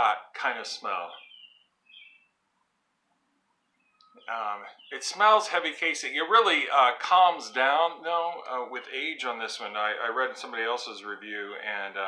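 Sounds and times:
faint short bird chirp: 1.1s - 2.3s.

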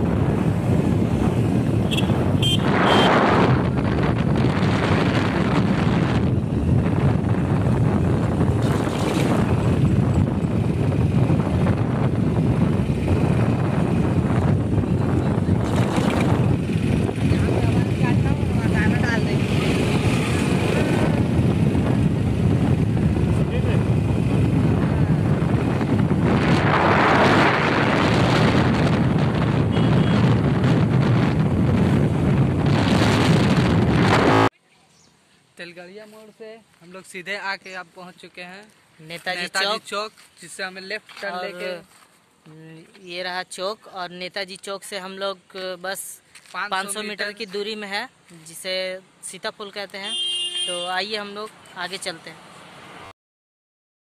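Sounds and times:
wind rushing over microphone: 0.0s - 34.5s
vehicle running and road noise: 0.0s - 53.2s.

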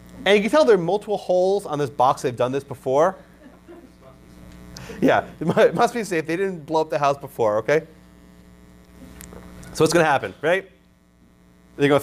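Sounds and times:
mains hum: 0.0s - 12.0s
man speaking: 5.0s - 8.0s, 9.7s - 10.8s.

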